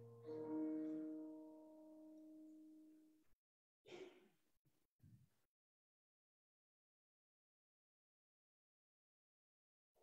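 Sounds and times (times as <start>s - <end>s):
held piano chord: 0.0s - 2.9s.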